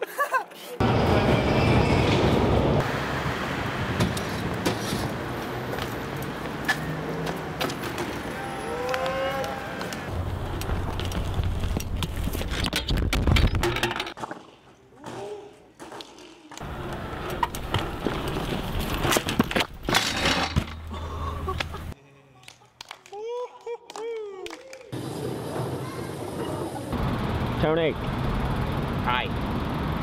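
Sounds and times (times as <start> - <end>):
outdoor background noise: 0.0 - 30.0
rising and falling squeal: 0.8 - 2.9, 8.2 - 10.1
bike clattering on pavement: 10.5 - 21.0.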